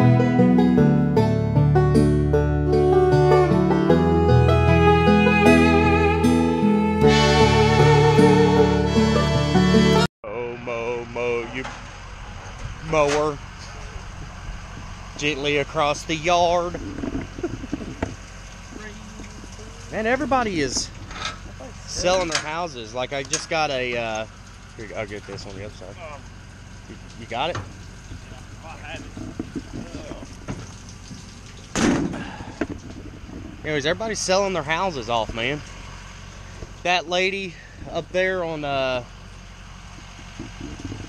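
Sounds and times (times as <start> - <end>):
background music: 0.0 - 10.1
vehicle engine idling: 0.0 - 41.0
metal ramp clanking on asphalt: 16.4 - 25.6, 26.2 - 35.8, 39.2 - 41.0
man humming: 18.8 - 19.8.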